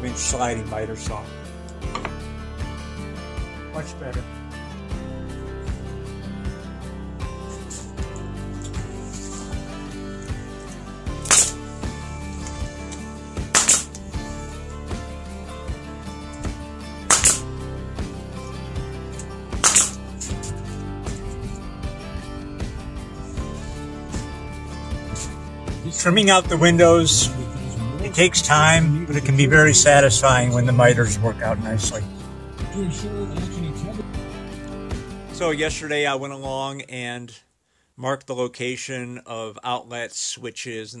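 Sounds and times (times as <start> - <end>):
background music with steady beat: 0.0 - 36.6
pneumatic nailer firing: 11.2 - 11.6, 13.5 - 14.0, 17.1 - 17.5, 19.6 - 20.0.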